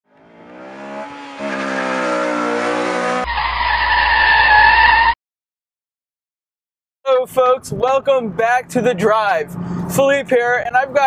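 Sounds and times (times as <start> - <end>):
car engine accelerating: 0.1 - 3.4.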